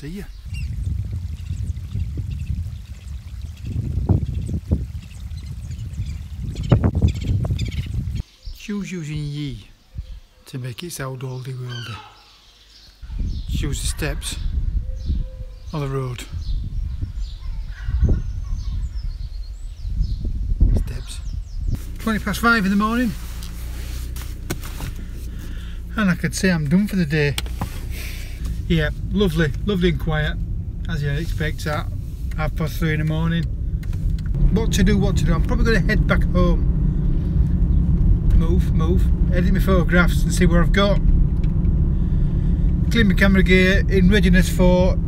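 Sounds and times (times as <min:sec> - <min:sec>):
wind buffeting microphone: 0:00.0 - 0:08.6, 0:09.8 - 0:10.3, 0:13.0 - 0:45.0
birdsong chirping: 0:00.0 - 0:45.0
steady low hum: 0:00.3 - 0:08.2, 0:21.3 - 0:45.0
rustling: 0:21.8 - 0:26.0, 0:27.3 - 0:29.2.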